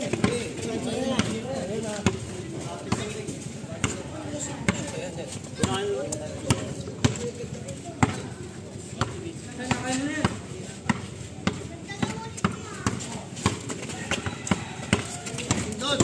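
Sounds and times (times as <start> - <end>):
basketball bouncing on concrete: 0.0 - 16.0
players' voices: 0.0 - 16.0.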